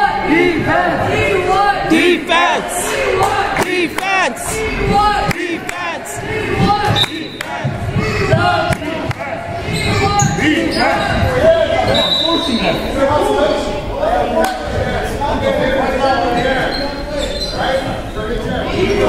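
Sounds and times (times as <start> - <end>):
people's voices calling: 0.2 - 13.9.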